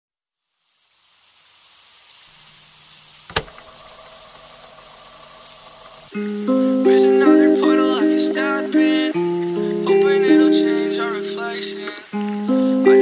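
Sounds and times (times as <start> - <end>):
rain: 0.3 - 13.0
sharp click: 3.3 - 3.6.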